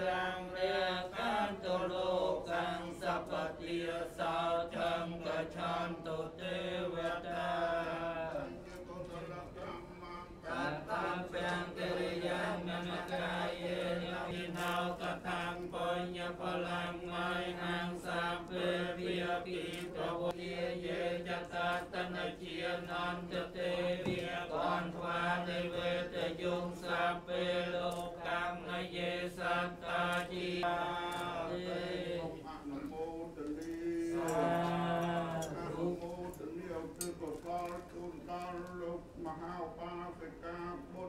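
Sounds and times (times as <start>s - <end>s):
monks chanting in unison: 0.0s - 41.0s.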